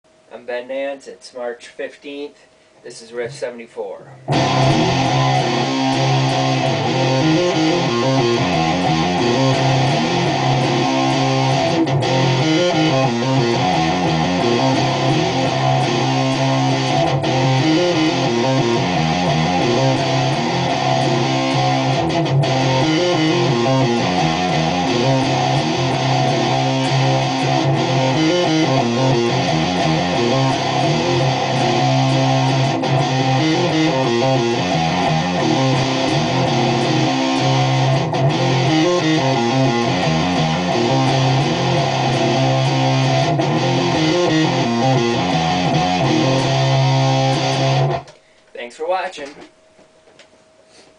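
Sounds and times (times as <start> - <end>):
electric guitar heavy riff: 0.4 - 49.5.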